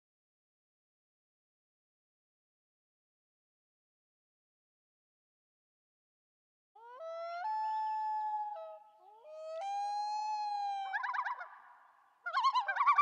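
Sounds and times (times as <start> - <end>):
loon wailing and tremolo calls: 9.8 - 11.6, 12.3 - 13.0.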